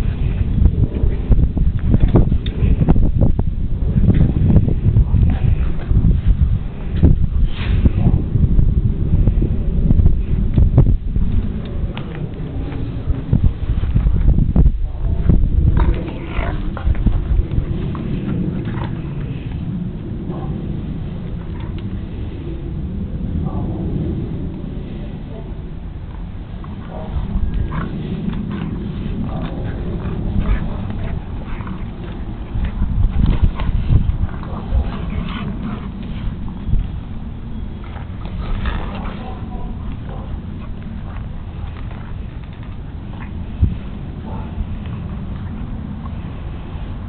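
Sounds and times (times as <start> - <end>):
loud low rumble: 0.0 - 47.0
dogs growling and grunting: 14.9 - 24.5, 25.2 - 47.0.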